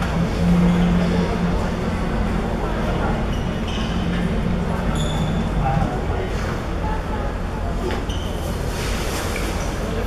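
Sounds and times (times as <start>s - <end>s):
low held tone: 0.0s - 6.0s
indoor hall low rumble: 0.0s - 10.0s.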